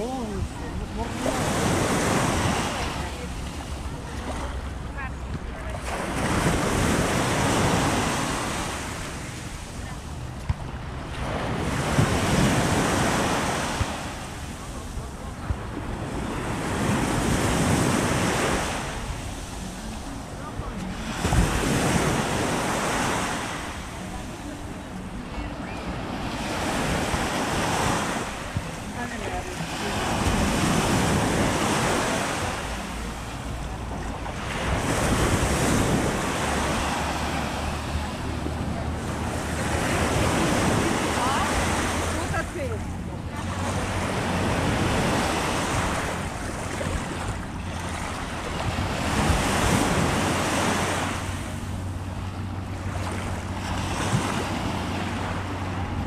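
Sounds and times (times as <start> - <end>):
small waves breaking on sandy shore: 0.0 - 56.0.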